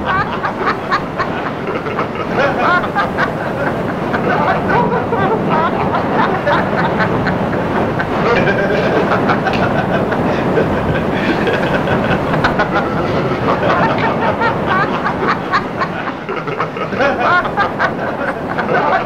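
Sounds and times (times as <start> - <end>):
crowd laughing: 0.0 - 19.0.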